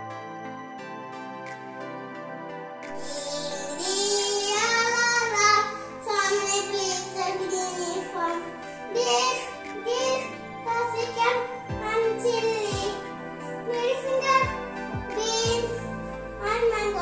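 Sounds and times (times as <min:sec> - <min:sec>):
child singing: 0:03.0 - 0:17.0.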